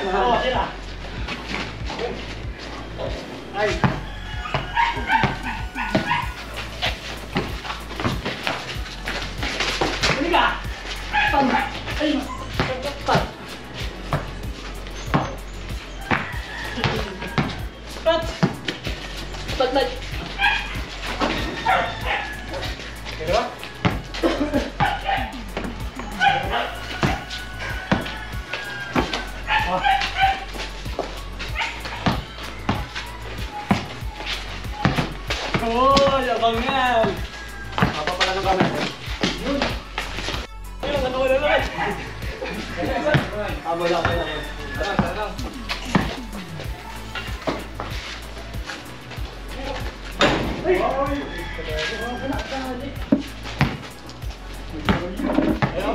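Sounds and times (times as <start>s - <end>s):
players shouting: 0.0s - 51.0s
basketball bouncing on concrete: 3.7s - 13.3s, 14.1s - 15.4s, 16.0s - 41.8s, 42.9s - 46.3s, 47.2s - 48.1s, 49.8s - 51.2s, 52.4s - 53.9s, 54.9s - 55.9s
dog barking: 4.5s - 6.6s, 11.1s - 12.8s, 20.2s - 22.5s, 24.8s - 25.4s, 26.1s - 28.1s, 29.5s - 30.5s, 31.5s - 33.9s.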